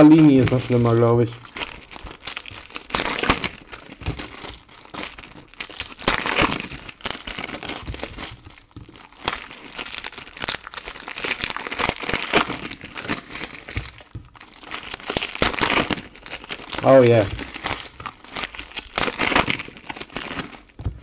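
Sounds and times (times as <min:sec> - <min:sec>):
foil wrappers crinkling and tearing: 0:00.0 - 0:21.0.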